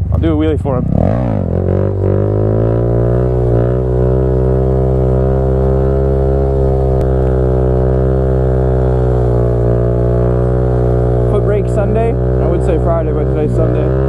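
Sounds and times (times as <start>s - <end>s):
motorcycle engine droning: 0.0s - 14.0s.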